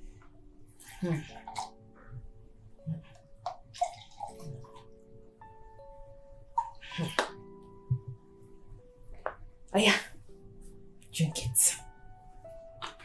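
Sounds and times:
soft background music: 0.0 - 13.0
liquid pouring into glass: 3.7 - 4.8.

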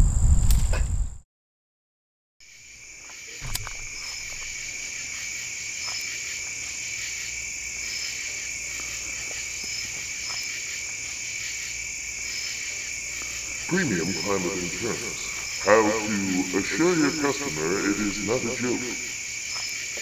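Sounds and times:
insects trilling: 2.4 - 20.0
single click: 3.4 - 4.6.

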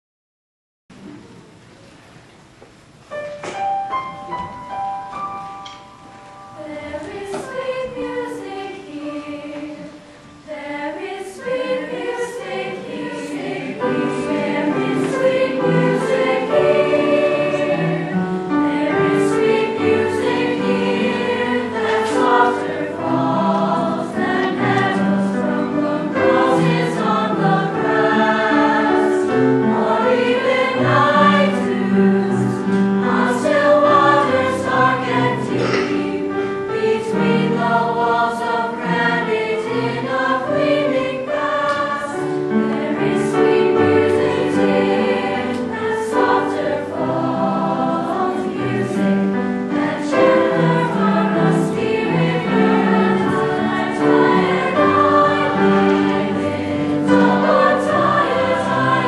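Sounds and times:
youth choir singing: 6.5 - 59.0.

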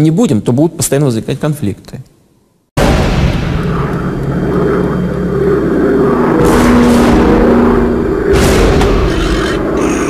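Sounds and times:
jet engine rumble and whine: 3.1 - 10.0.

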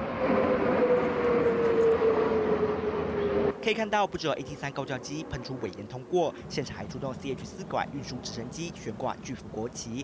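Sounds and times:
jet aircraft passing overhead: 0.0 - 10.0.

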